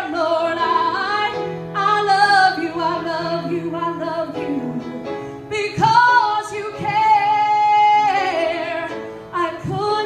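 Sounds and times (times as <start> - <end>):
woman singing worship song: 5.6 - 10.0.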